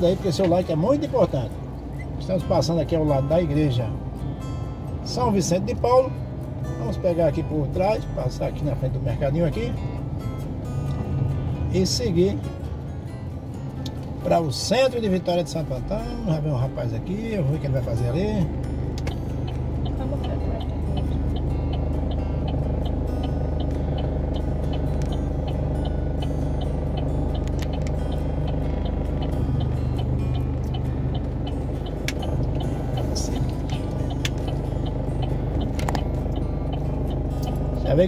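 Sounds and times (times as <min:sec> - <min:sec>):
car engine idling: 0:00.0 - 0:38.0
music playing: 0:00.0 - 0:38.0
light even ticking: 0:13.7 - 0:38.0.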